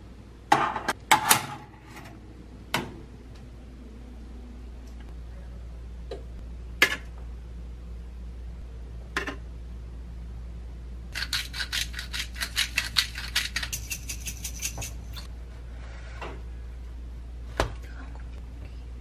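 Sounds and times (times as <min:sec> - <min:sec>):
pepper grinder clicking: 0:11.2 - 0:15.0.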